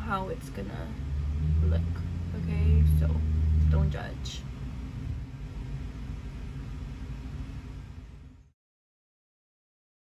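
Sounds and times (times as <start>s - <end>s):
low background rumble: 0.0s - 8.6s.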